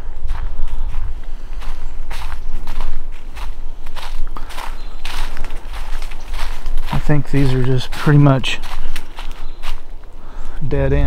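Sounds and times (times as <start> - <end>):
footsteps crunching dry leaves: 0.1 - 10.6.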